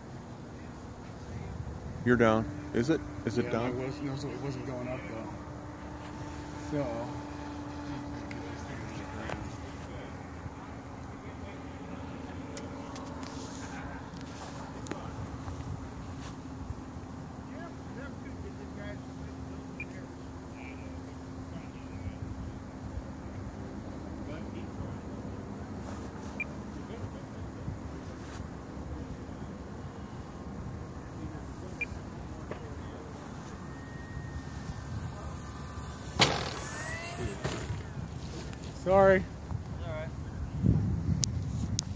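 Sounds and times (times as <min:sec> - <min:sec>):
model airplane motor droning: 0:00.1 - 0:39.5
wind rumbling on microphone: 0:36.7 - 0:41.9.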